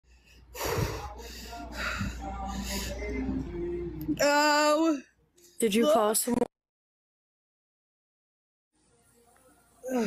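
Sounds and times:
person gasping and breathing hard: 0:00.1 - 0:03.0.

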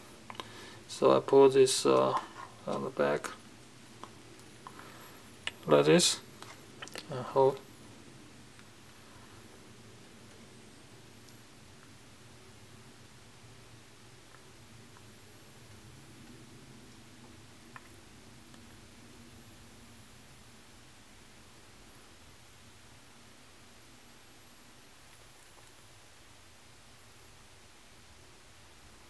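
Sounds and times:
faint hiss: 0:00.0 - 0:29.0
low hum: 0:00.0 - 0:29.0.

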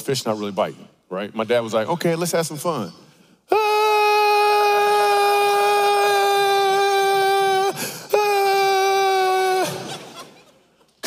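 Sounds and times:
man screaming: 0:03.5 - 0:09.9.

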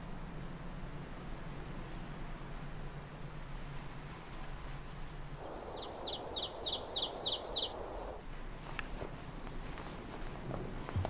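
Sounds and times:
soft background hiss: 0:00.0 - 0:11.0
bird chirping: 0:05.4 - 0:08.2.

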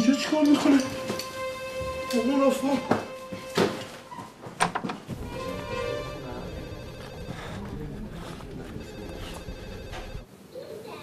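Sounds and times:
mobile phone ringing: 0:05.3 - 0:10.3.

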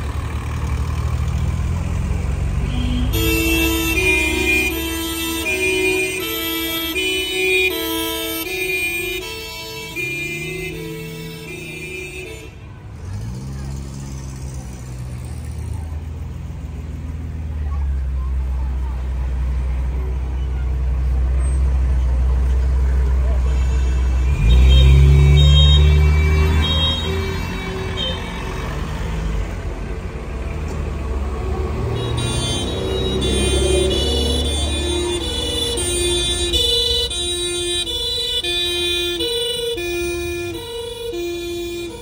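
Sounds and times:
old car engines rumbling: 0:00.0 - 0:42.0.

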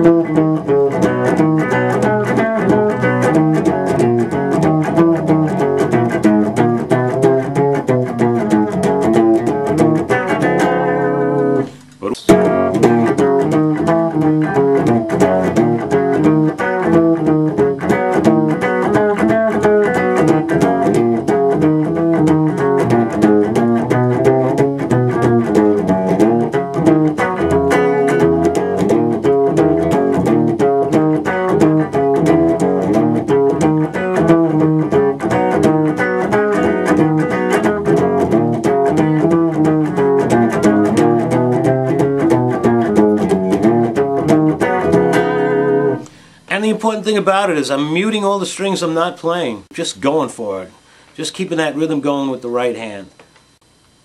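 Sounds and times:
muted guitar strings chopping: 0:00.0 - 0:46.2
blues guitar walking bass: 0:00.0 - 0:53.0.

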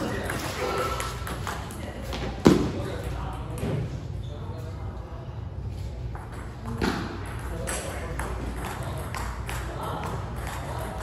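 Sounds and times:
background voices in a hall: 0:00.0 - 0:11.0.

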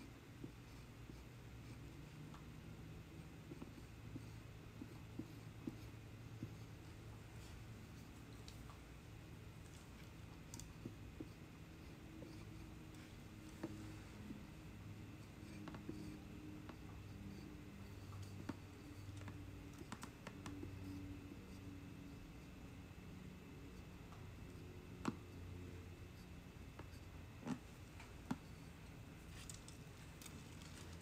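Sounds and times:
low steady hum: 0:00.0 - 0:31.0.

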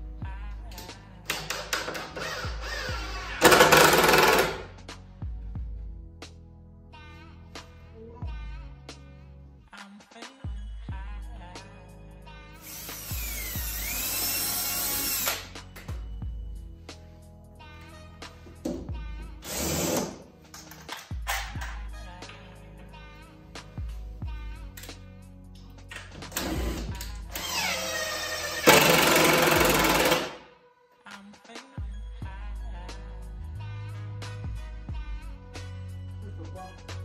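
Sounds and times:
background music: 0:00.0 - 0:37.0
drill driving screws into wood: 0:01.3 - 0:04.7, 0:12.6 - 0:15.5, 0:19.4 - 0:20.2, 0:26.2 - 0:30.4.

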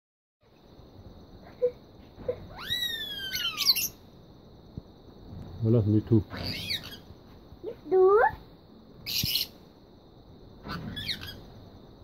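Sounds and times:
parakeet calling: 0:02.5 - 0:04.0, 0:06.3 - 0:07.1, 0:09.0 - 0:09.6, 0:10.6 - 0:11.5.

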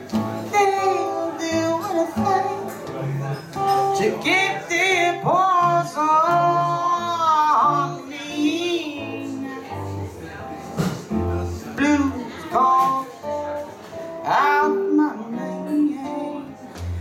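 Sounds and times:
bending guitar phrases: 0:00.0 - 0:17.0.

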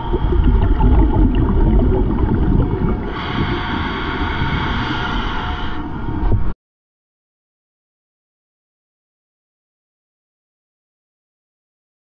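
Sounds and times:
underwater rumble of rushing water: 0:00.0 - 0:06.5.

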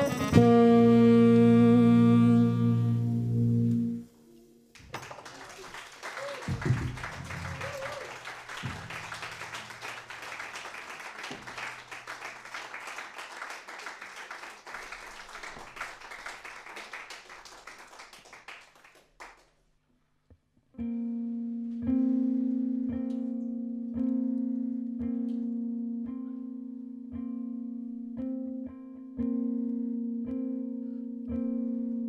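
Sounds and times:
jazz band held notes: 0:00.0 - 0:04.7, 0:06.4 - 0:10.7
audience applause: 0:04.8 - 0:19.5.

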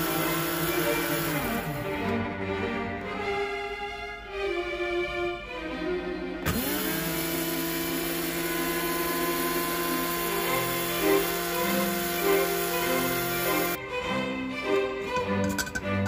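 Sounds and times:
electric spice grinder motor: 0:00.0 - 0:01.9, 0:06.4 - 0:13.8
string music: 0:00.0 - 0:16.0.

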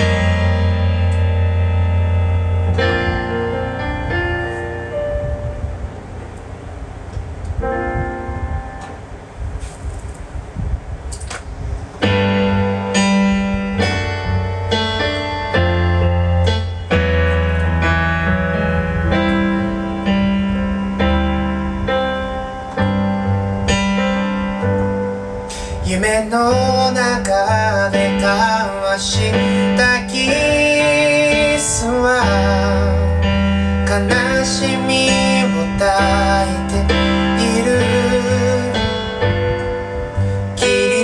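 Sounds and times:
low bass part: 0:00.0 - 0:09.7, 0:11.6 - 0:41.0
piano chords: 0:00.0 - 0:41.0.

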